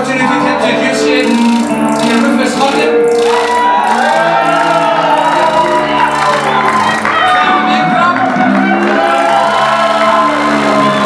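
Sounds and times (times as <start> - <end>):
live band music: 0.0 - 11.0
audience whooping and cheering: 1.6 - 11.0.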